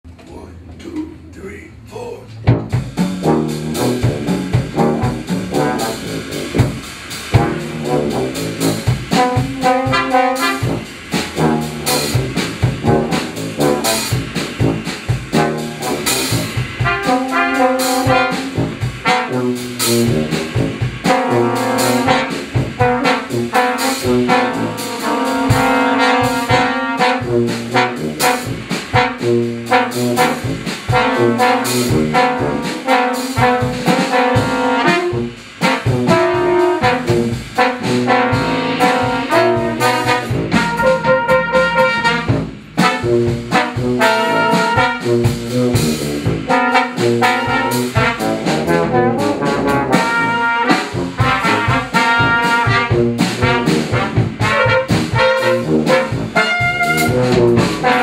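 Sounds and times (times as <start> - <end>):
drum kit hits: 2.3 - 58.0
brass ensemble playing jazz: 2.4 - 58.0.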